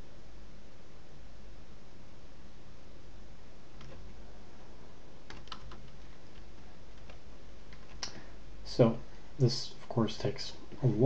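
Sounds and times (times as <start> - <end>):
low background hum: 0.0 - 11.0
keyboard key clicks: 5.3 - 6.0.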